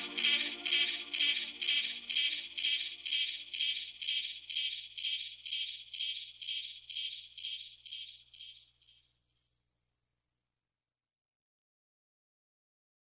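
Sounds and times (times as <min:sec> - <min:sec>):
low synth tones: 0:00.0 - 0:05.0.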